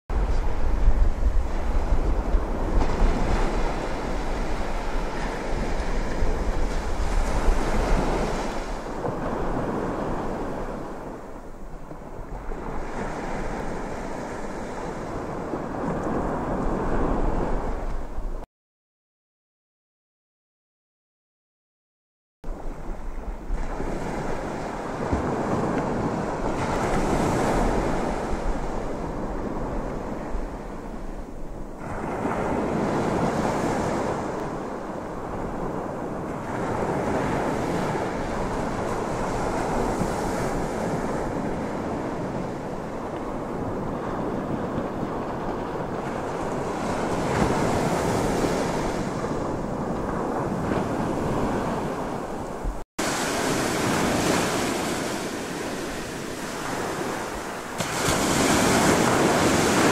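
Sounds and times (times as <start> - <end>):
ocean surf washing: 0.1 - 18.4, 22.5 - 59.9
wind buffeting microphone: 0.1 - 18.4, 22.5 - 59.9.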